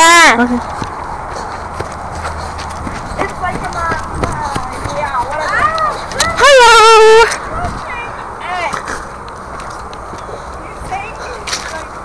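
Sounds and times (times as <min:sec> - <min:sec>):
footsteps on rough ground: 0:00.0 - 0:12.0.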